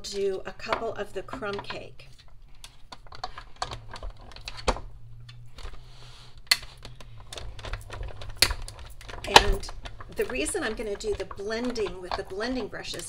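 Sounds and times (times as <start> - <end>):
plastic clicks and knocks: 0.1 - 5.8, 6.4 - 13.0
sliding rustle: 5.4 - 13.0.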